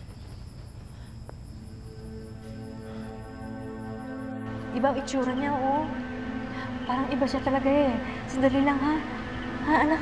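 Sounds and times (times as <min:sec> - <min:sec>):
crickets chirping: 0:00.0 - 0:10.0
soft sustained music: 0:01.5 - 0:10.0.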